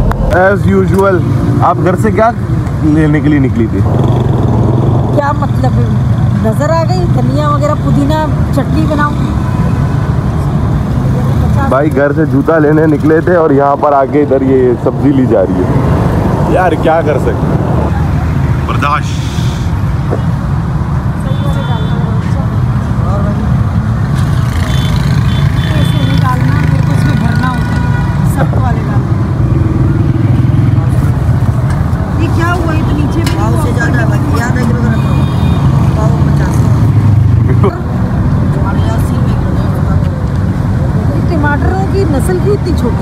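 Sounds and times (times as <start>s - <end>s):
low rumble of vehicle engines: 0.0s - 43.0s
people talking: 5.2s - 9.2s, 32.2s - 35.1s, 38.6s - 40.2s.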